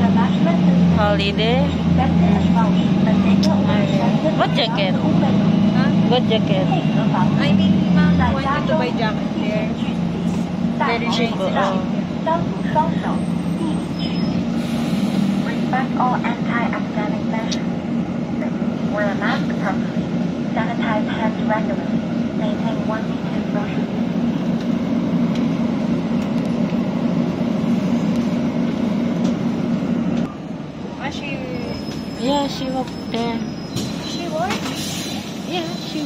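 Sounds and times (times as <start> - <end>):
bus engine and road drone: 0.0 - 36.0.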